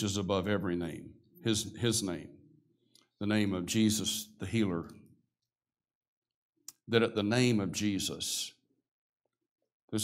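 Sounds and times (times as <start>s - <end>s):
man speaking: 0.0s - 2.4s, 3.1s - 5.0s.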